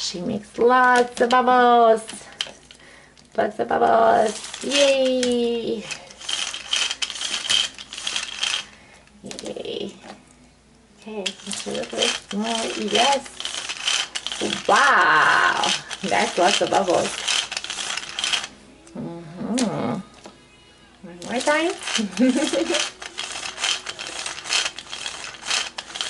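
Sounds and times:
toy mechanism clicking and rattling: 0.6s - 2.8s, 4.0s - 9.6s, 11.1s - 18.5s, 21.2s - 26.0s
woman humming sing-song: 18.8s - 21.1s.

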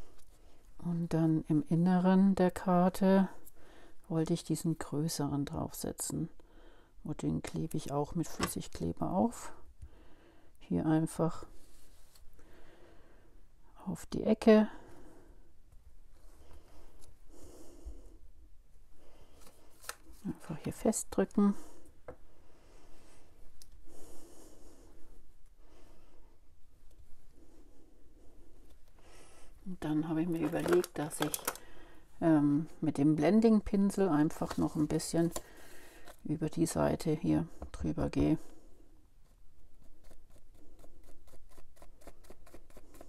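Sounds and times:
person breathing softly: 3.3s - 4.1s, 6.4s - 7.0s, 9.6s - 10.6s, 11.5s - 13.7s, 14.7s - 15.6s, 16.2s - 19.9s, 21.4s - 29.7s, 31.5s - 32.2s, 35.3s - 36.2s, 38.3s - 39.1s.

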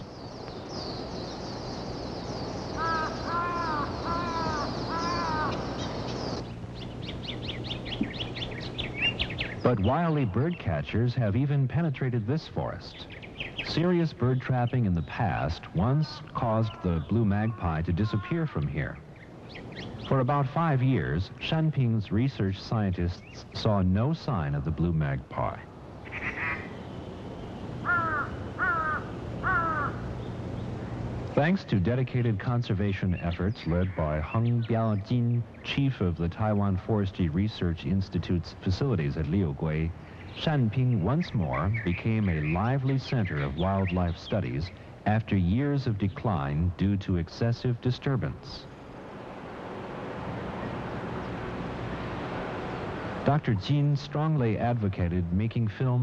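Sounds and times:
bird harsh calls: 0.0s - 10.8s, 12.8s - 21.2s, 26.0s - 31.3s, 39.9s - 45.0s
high-pitched chirping of wildlife: 0.0s - 10.8s
magpie short calls: 2.8s - 6.3s, 26.0s - 26.8s, 27.8s - 30.0s.

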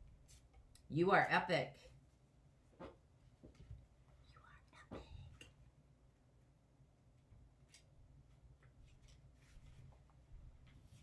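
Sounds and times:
faint whisper: 4.1s - 5.5s.

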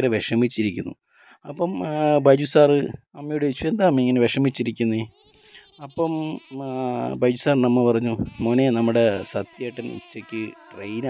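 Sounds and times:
person narrating: 8.2s - 11.0s.

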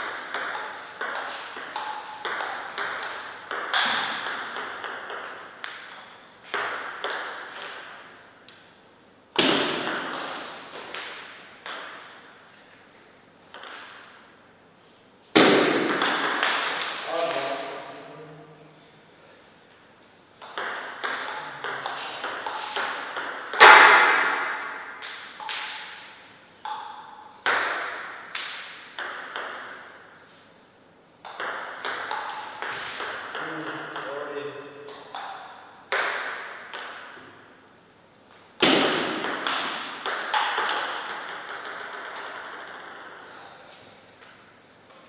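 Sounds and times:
table tennis ball clicking: 20.4s - 23.8s, 25.0s - 25.9s, 31.2s - 34.1s, 39.2s - 43.2s.

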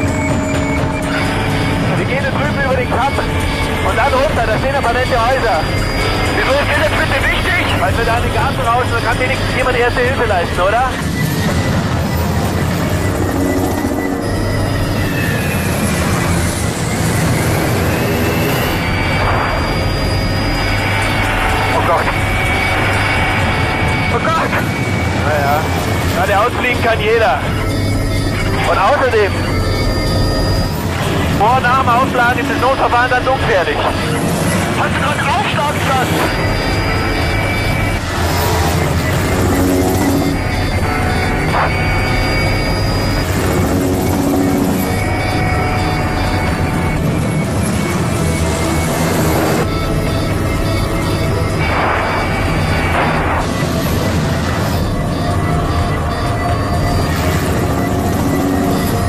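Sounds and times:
background music: 0.0s - 59.0s
low engine drone: 0.0s - 59.0s.

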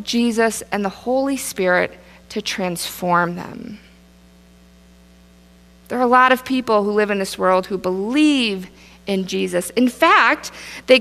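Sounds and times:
woman speaking: 0.0s - 3.9s, 5.9s - 11.0s
electrical mains hum: 0.0s - 11.0s.

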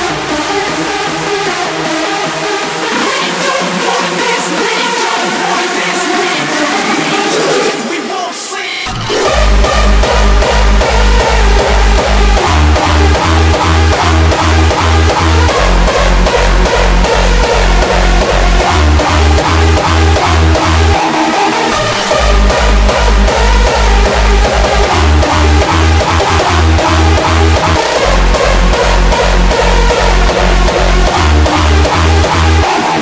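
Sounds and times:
heavy kick drum: 8.9s - 21.0s, 21.8s - 32.7s
synth melody: 8.9s - 33.0s.

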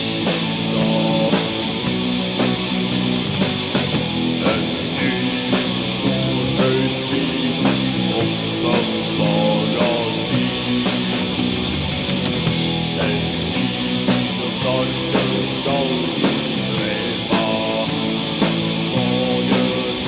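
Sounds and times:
distorted electric guitars: 0.0s - 20.0s
drums: 0.0s - 20.0s.

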